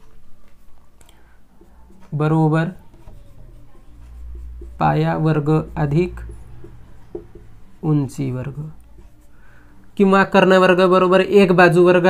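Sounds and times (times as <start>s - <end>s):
marker scratching on whiteboard: 0.0s - 10.6s
person speaking: 1.0s - 12.0s.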